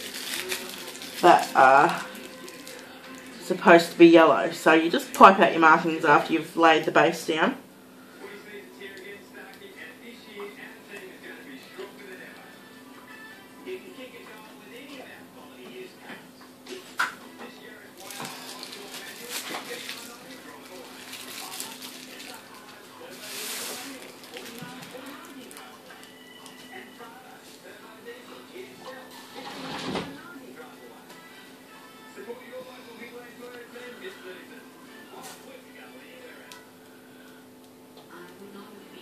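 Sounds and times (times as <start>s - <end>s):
background music: 0.0s - 7.4s, 11.4s - 14.6s, 29.2s - 36.8s.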